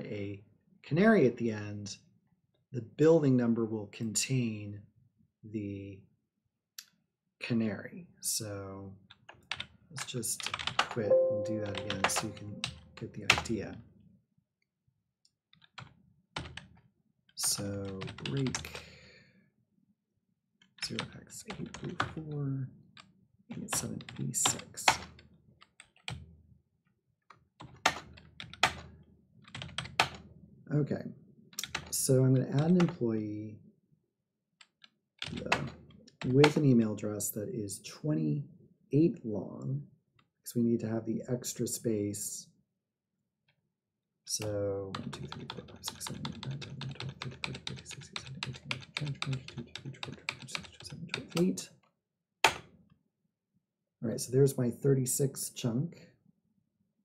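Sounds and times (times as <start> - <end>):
computer keyboard keystrokes: 10.4 - 12.6, 17.4 - 18.6, 44.9 - 51.6
keyboard key tap: 10.8 - 12.5.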